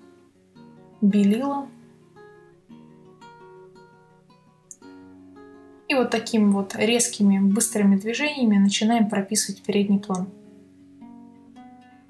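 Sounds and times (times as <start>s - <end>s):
plucked acoustic guitar music: 0.0s - 12.0s.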